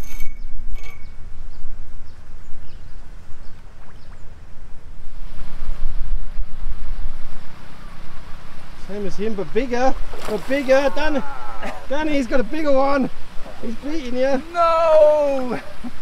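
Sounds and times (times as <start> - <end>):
wind rumbling on microphone: 0.0 - 16.0
churning water: 7.4 - 16.0.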